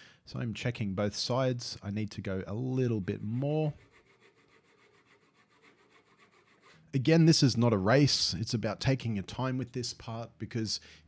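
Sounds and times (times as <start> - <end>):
hand saw cutting wood: 2.8 - 6.9.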